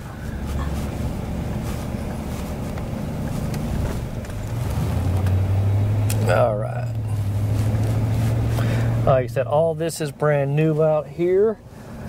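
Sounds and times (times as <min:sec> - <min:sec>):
vehicle engine and road noise: 0:00.0 - 0:12.0.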